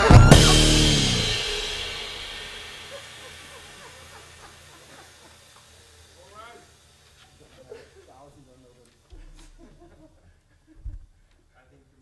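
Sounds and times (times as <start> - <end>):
jazz band playing: 0.0 - 3.5
cymbal crash: 0.0 - 6.9.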